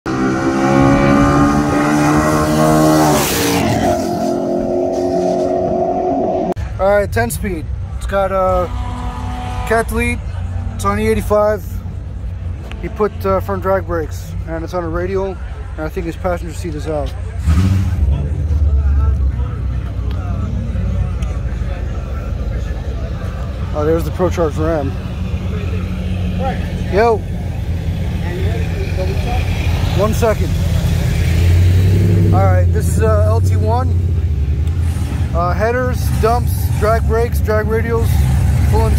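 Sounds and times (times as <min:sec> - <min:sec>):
car engines at full throttle: 0:00.0 - 0:38.9
faint voices: 0:06.4 - 0:31.5.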